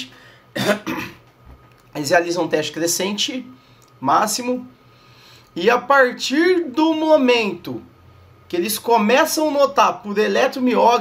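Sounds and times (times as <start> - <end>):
man clearing his throat: 0.6 - 1.2.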